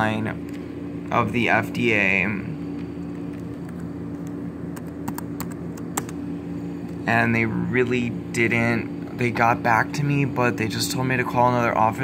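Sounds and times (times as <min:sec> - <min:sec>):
steady low hum: 0:00.0 - 0:12.0
laptop keyboard typing: 0:04.7 - 0:06.2.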